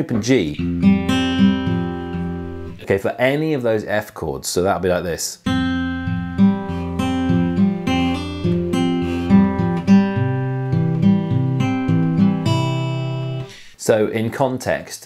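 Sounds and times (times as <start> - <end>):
fingerpicked acoustic guitar: 0.2 - 2.9, 5.4 - 13.6.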